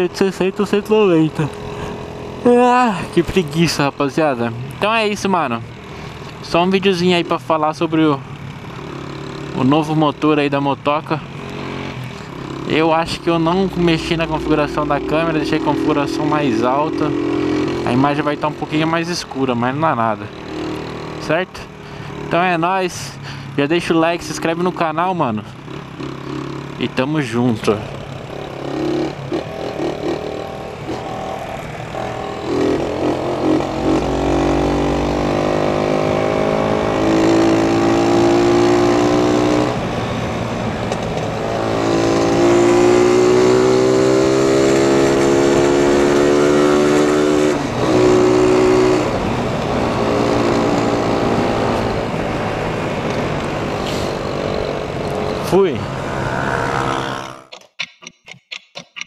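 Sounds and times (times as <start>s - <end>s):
motorcycle engine accelerating: 0.0s - 18.9s, 19.5s - 22.5s, 25.5s - 27.0s, 27.6s - 57.5s
wind and road noise: 0.0s - 57.7s.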